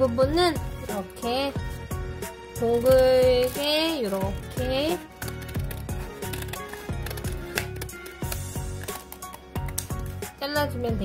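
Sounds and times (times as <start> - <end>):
background music: 0.0 - 11.0
scissors snipping paper: 2.6 - 10.0.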